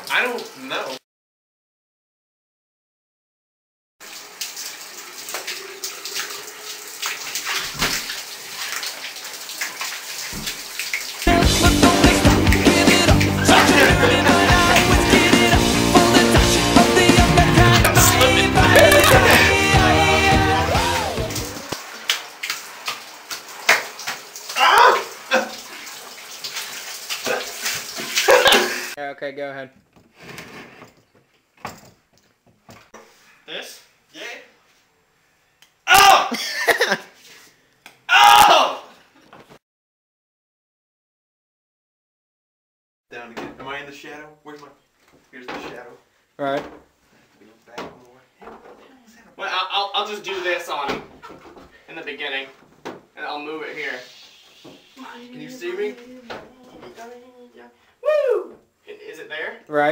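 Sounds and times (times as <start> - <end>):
shower spray splashing: 4.0 - 29.0, 53.7 - 55.3
loud rock music: 11.3 - 21.7.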